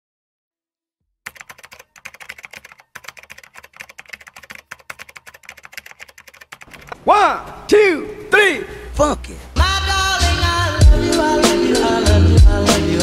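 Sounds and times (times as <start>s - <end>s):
keyboard typing clicks: 1.3s - 7.0s.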